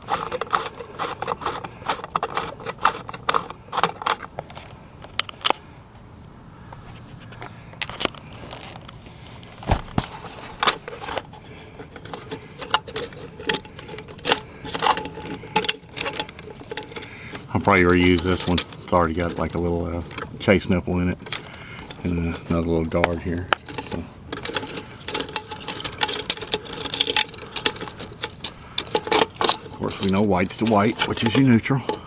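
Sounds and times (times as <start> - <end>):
metallic clicks and rattles: 0.0 - 5.6, 10.2 - 32.0.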